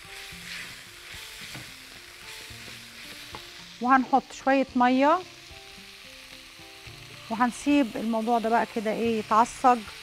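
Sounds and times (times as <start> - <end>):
meat sizzling in a frying pan: 0.0 - 10.0.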